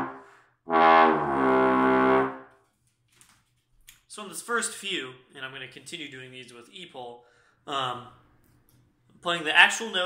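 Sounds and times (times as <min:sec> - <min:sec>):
trombone sustained notes: 0:00.0 - 0:02.5.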